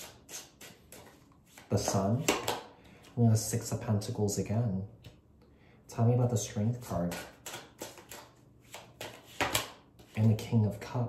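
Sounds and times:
cards being shuffled: 0:00.0 - 0:03.2, 0:06.9 - 0:10.6.

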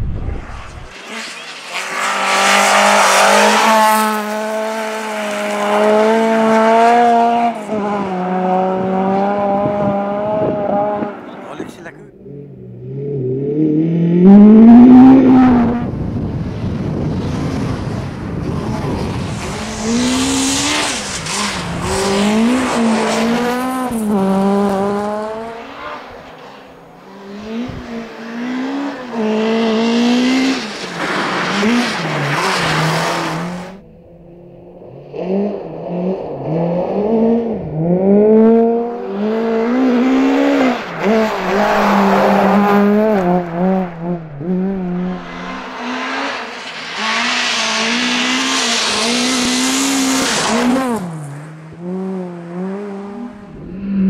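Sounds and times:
car engine revving hard: 0:01.0 - 0:16.3, 0:17.4 - 0:26.2, 0:27.2 - 0:33.8, 0:35.0 - 0:54.0.

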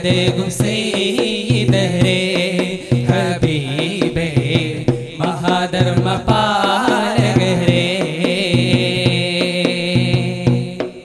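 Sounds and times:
group singing devotional song: 0:00.0 - 0:11.0.

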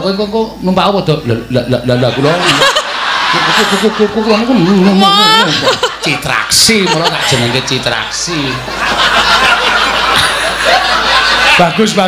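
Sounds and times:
crowd laughter: 0:02.0 - 0:12.0.

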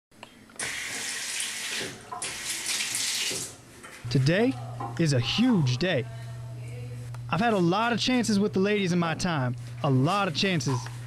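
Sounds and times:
faucet water running into sink: 0:00.6 - 0:03.6.

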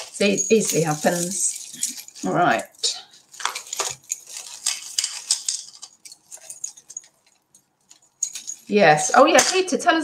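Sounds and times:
jewellery chains clinking: 0:00.0 - 0:09.6.

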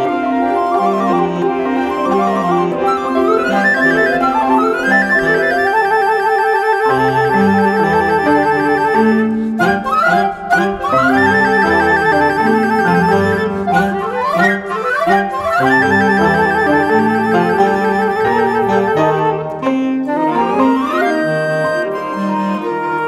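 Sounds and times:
woodwind and piano ensemble: 0:00.0 - 0:23.0.

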